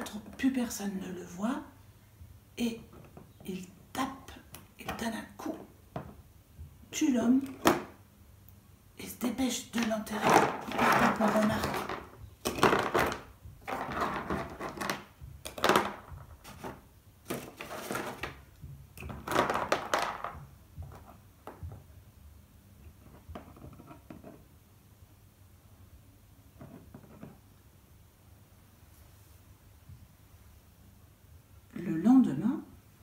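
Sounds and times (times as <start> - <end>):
rustles and knocks on tabletop: 2.9 - 3.5, 5.9 - 6.8, 10.2 - 21.9, 22.8 - 24.5, 26.6 - 27.5.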